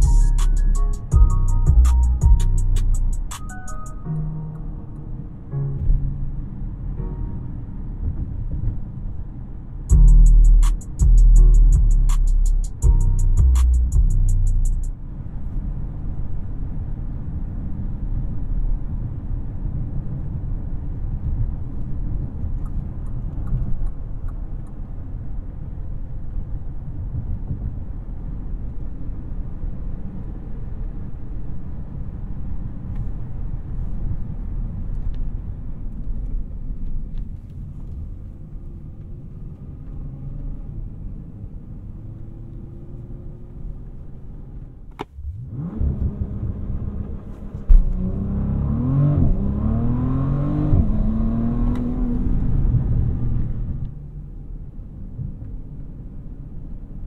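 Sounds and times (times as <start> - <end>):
car engine rumbling and accelerating: 0.0 - 57.0
sudden loud thump: 47.7 - 47.9.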